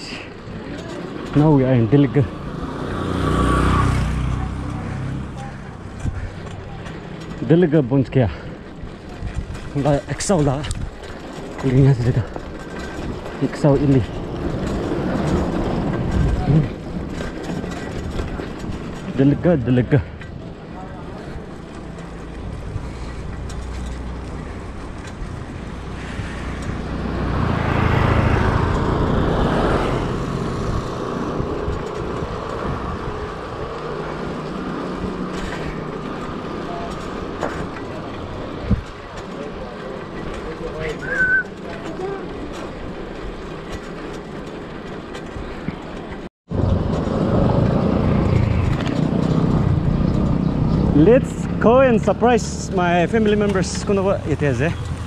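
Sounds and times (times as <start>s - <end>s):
bicycle tyre rumble: 0.0s - 55.0s
wind buffeting microphone: 2.9s - 7.5s, 8.3s - 40.4s.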